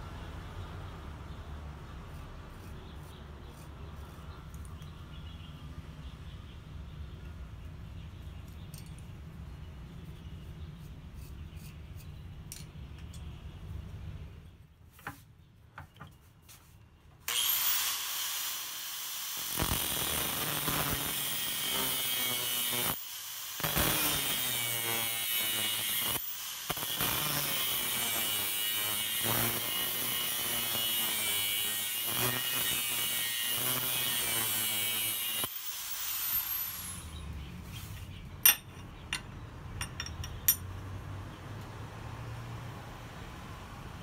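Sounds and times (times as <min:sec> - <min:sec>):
angle grinder grinding metal: 0:17.3 - 0:37.3.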